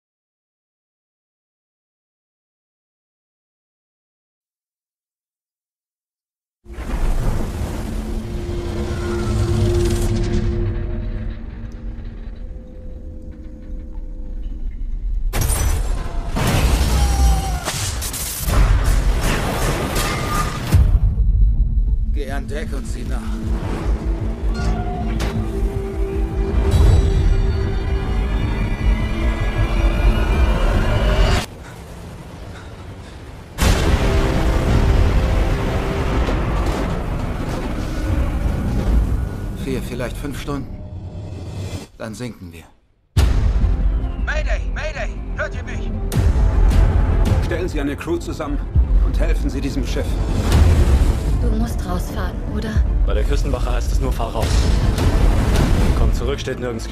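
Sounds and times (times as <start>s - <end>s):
roar of wind and heavy seas: 6.7s - 14.3s, 27.7s - 39.6s
low rumble: 6.7s - 15.4s
dramatic orchestral score: 6.8s - 14.1s, 15.8s - 41.8s, 43.2s - 56.9s
low ominous music drone: 7.6s - 15.4s, 21.0s - 31.5s.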